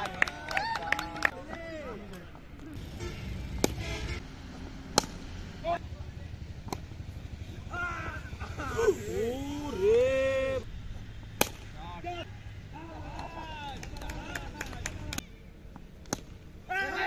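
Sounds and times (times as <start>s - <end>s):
players shouting: 7.4s - 10.7s, 16.6s - 17.0s.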